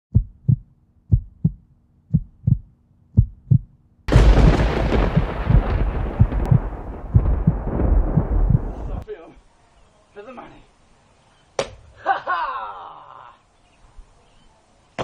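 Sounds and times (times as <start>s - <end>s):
heartbeat low thumps: 0.1s - 9.0s
loud blast of noise: 4.1s - 9.0s.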